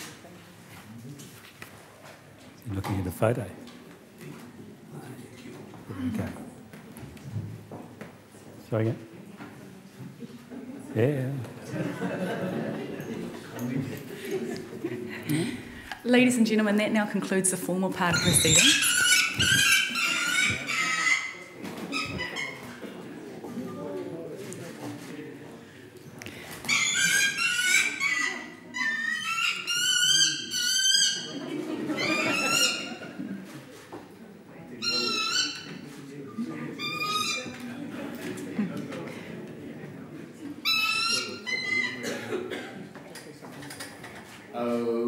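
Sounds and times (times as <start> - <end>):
falcon shrill calls: 18.1 - 22.5, 26.7 - 31.3, 34.8 - 35.7, 40.6 - 42.0.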